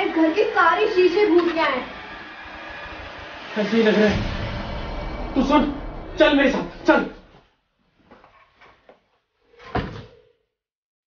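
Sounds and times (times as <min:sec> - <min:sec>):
loud bang with ringing tone: 0:01.4 - 0:07.3.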